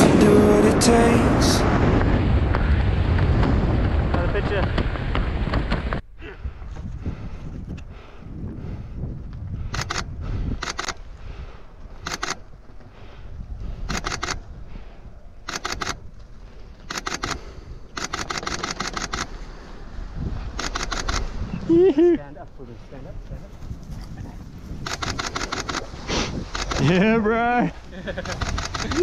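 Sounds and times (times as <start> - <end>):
wind rushing over microphone: 0.0 - 29.0
camera shutter clicks: 9.7 - 11.0, 12.0 - 12.4, 13.9 - 14.4, 15.5 - 16.0, 16.8 - 19.4, 20.6 - 21.3, 24.9 - 25.9, 26.5 - 26.8, 28.2 - 29.0.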